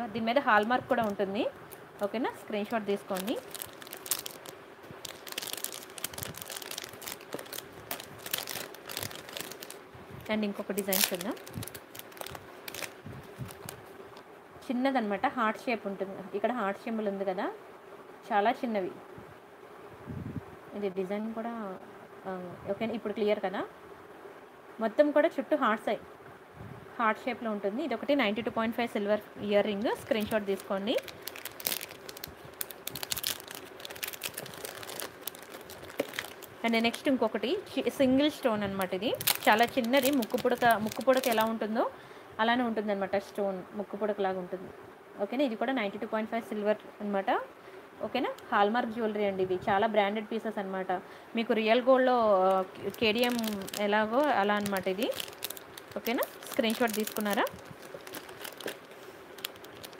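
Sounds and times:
plastic packets crinkling: 0.6 - 13.9, 29.8 - 37.4, 38.4 - 41.6, 52.3 - 59.9.

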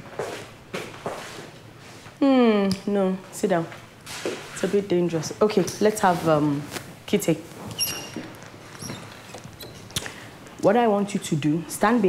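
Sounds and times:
soft shuffling sounds: 0.1 - 2.2, 3.2 - 10.7.

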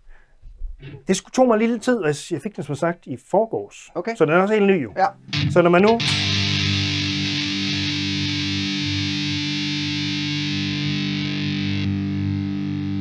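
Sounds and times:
distorted electric guitar chord: 5.1 - 13.0.

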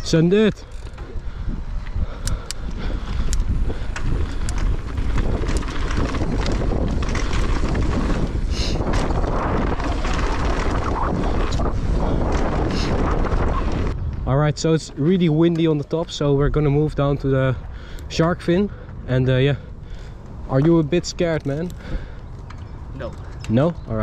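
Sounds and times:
bike clicks and rattles: 0.0 - 16.3, 17.2 - 24.0
wind buffeting microphone: 0.0 - 24.0
tyres rolling on dirt: 2.9 - 14.0.

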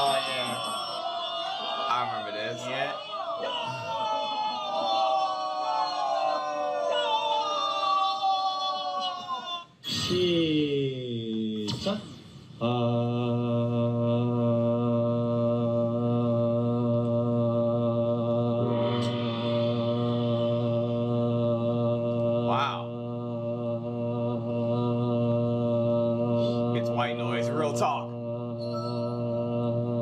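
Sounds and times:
man humming low drone: 12.6 - 30.0.

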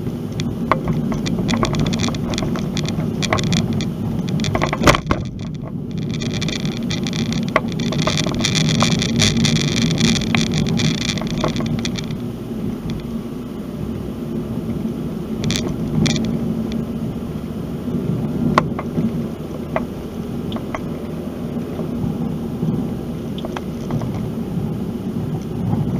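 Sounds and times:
wheels knocking over bumps: 0.0 - 13.2, 15.4 - 16.9, 18.0 - 24.4
crackling rattle: 0.0 - 13.6, 14.3 - 25.9
tyre and road rumble: 0.0 - 25.9.

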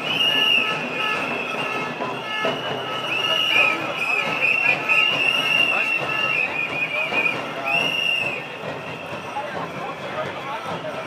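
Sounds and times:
walking crowd: 0.0 - 11.0.

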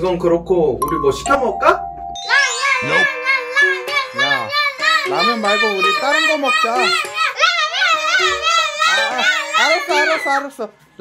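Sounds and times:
background music: 0.0 - 10.5.

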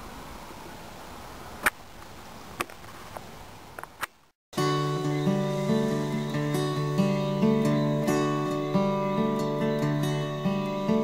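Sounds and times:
steady faint hiss: 0.0 - 11.0.

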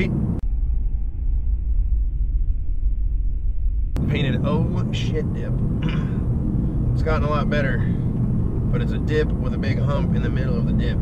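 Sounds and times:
car cabin road rumble: 0.0 - 0.6, 3.9 - 11.0.

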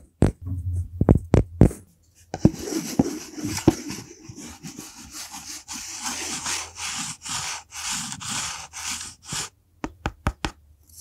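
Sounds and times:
wooden block scraping plastic bottle: 2.4 - 9.5.

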